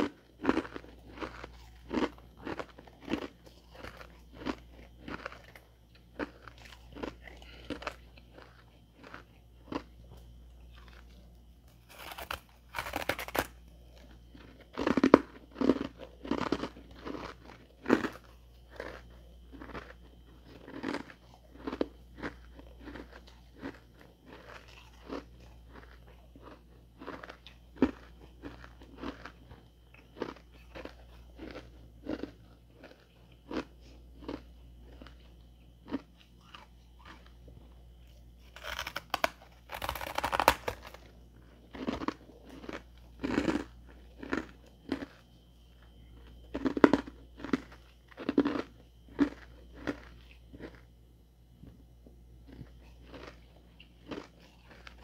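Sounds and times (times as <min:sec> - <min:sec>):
person chewing crunchy frost: 0:00.0 - 0:55.0.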